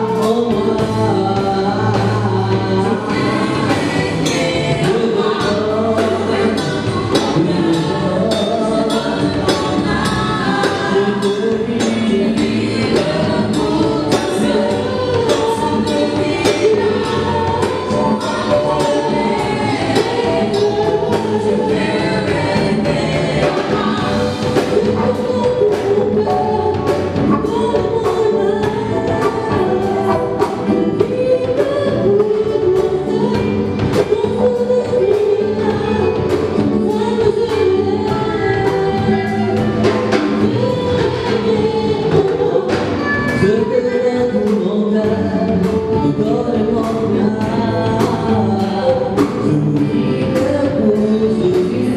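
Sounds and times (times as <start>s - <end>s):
drum kit steady beat: 0.0s - 51.9s
keyboard: 0.0s - 51.9s
singers in harmony: 0.0s - 51.9s.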